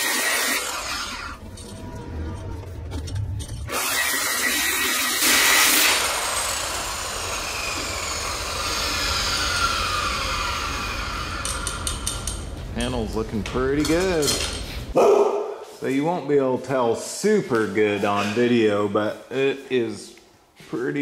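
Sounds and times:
angle grinder whining: 0.0 - 12.6.

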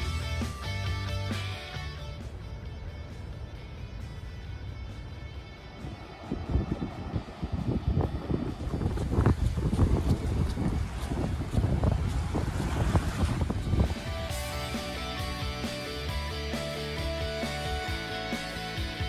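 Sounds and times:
background music: 0.0 - 9.0, 13.6 - 19.0
wind buffeting microphone: 3.3 - 15.2
surf washing ashore: 5.4 - 15.0.

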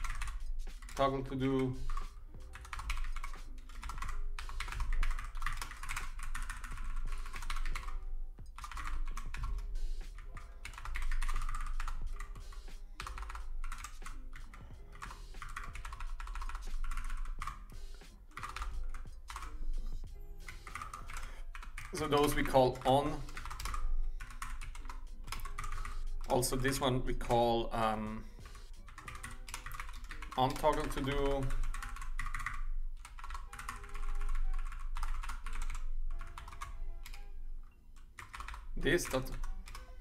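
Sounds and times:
computer keyboard typing: 0.0 - 37.3, 37.9 - 40.0
faint music: 0.0 - 40.0.

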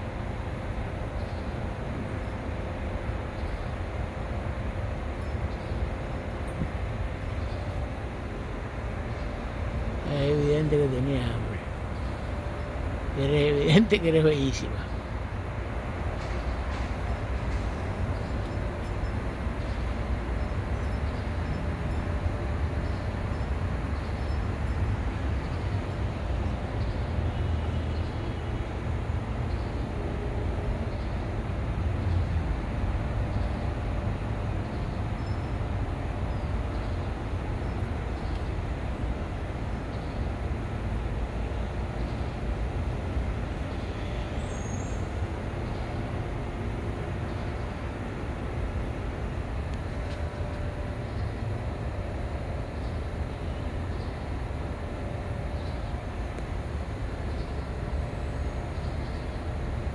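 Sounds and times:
low outdoor rumble: 0.0 - 59.9.

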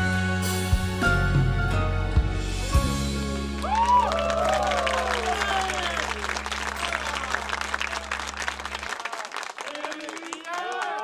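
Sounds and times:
audience applauding and shouting: 3.4 - 11.0.

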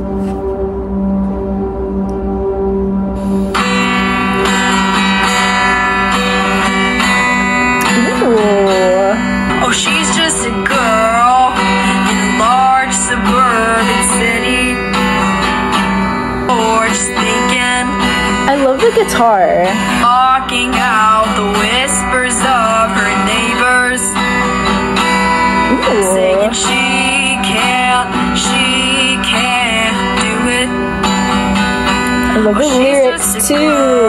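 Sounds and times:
steady intro tone: 0.0 - 9.6
acoustic guitar: 0.0 - 34.0
woman singing: 7.8 - 14.8, 16.5 - 24.2, 25.7 - 30.7, 32.1 - 34.0.

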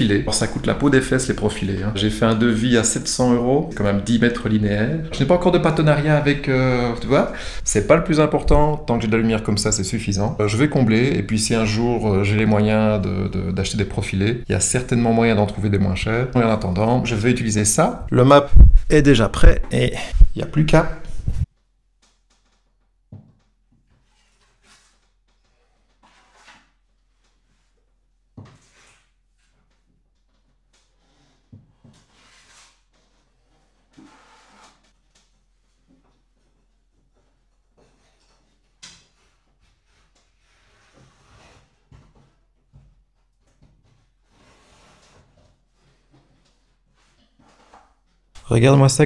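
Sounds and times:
hand tool scraping filler: 30.8 - 35.0.

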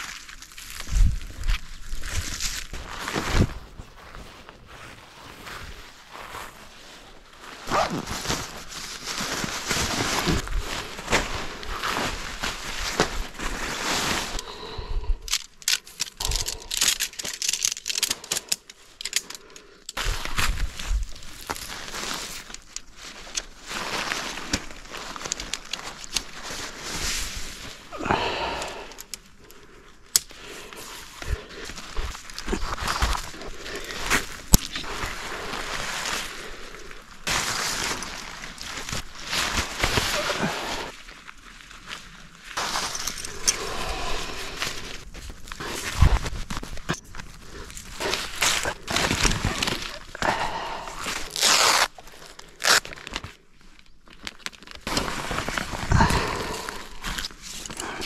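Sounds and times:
nylon fabric rustling: 2.0 - 14.4, 20.0 - 27.9, 30.8 - 50.1, 51.0 - 53.3, 54.0 - 58.0
tent poles clicking together: 15.2 - 20.6, 21.3 - 26.8, 28.5 - 29.3, 30.1 - 35.1, 42.6 - 43.8, 54.0 - 58.0.

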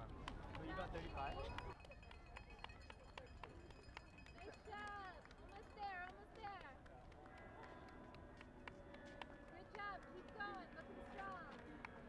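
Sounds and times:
people's voices in background: 0.0 - 12.0.

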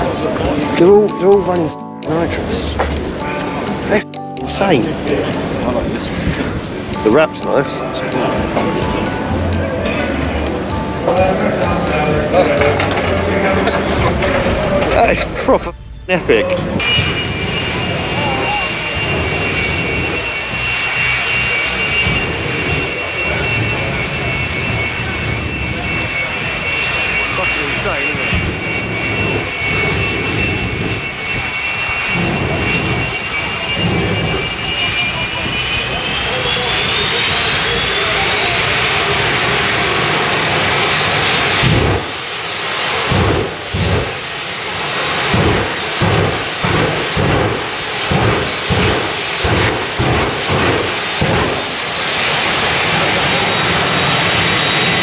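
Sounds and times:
high-pitched engine whine: 4.8 - 55.0.

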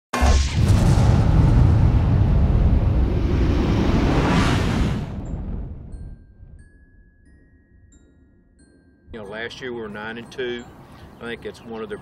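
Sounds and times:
deep cinematic boom: 0.2 - 6.6
low rumble: 0.2 - 6.7.

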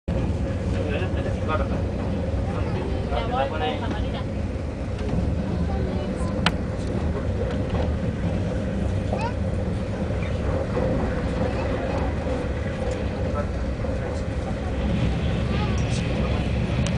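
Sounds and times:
faint passenger voices: 0.1 - 16.9
train cabin rumble and hum: 0.1 - 16.9.

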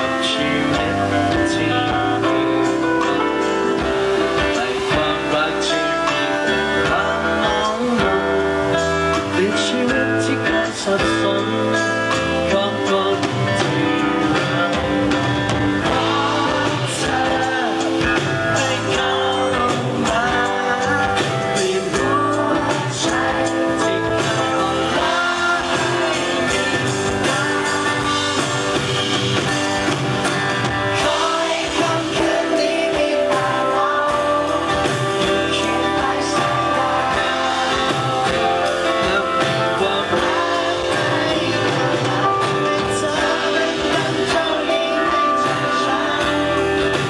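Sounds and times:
guitar: 0.0 - 47.0
man singing lead vocal: 0.0 - 47.0
pop-rock band playing: 0.0 - 47.0.

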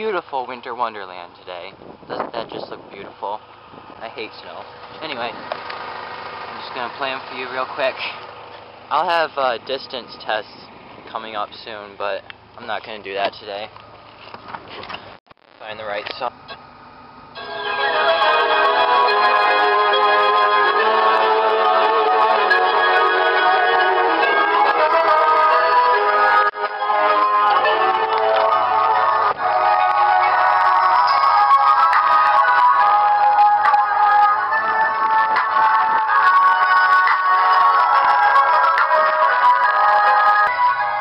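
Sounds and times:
loud music through car speakers: 17.4 - 41.0.

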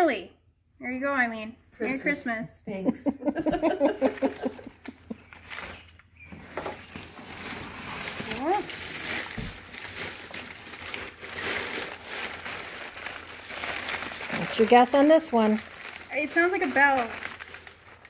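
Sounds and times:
packing paper rustling: 4.0 - 18.0.

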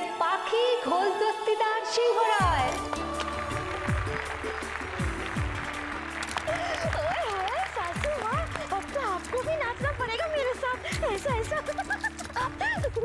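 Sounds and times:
audience applause: 2.4 - 13.0.

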